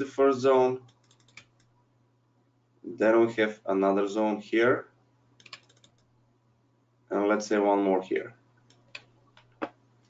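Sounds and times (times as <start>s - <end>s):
faint computer keyboard clicks: 0.8s - 1.7s, 5.4s - 6.1s.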